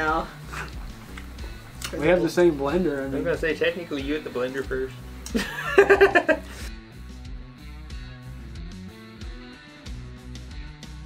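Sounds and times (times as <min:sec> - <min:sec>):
burst of laughter: 0:05.3 - 0:06.6.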